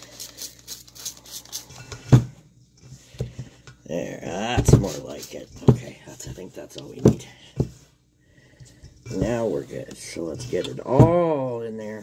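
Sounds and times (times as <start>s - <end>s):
spray bottle spritzing: 0.0s - 1.7s.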